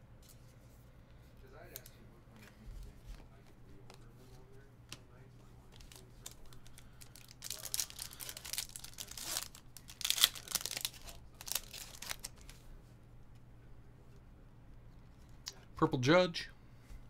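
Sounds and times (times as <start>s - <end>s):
wrapper tearing and crinkling: 5.8s - 12.6s.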